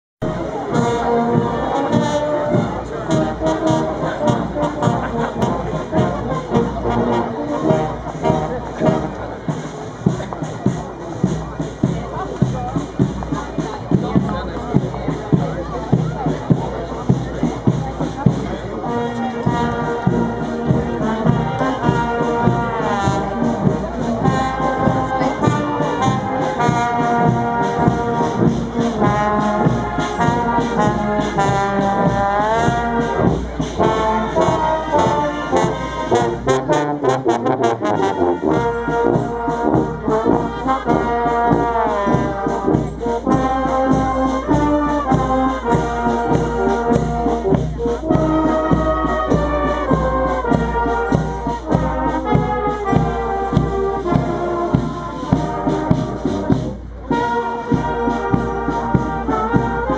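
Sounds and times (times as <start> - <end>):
brass band playing a march: 0.2 - 59.9
steady drum beat: 0.2 - 59.9.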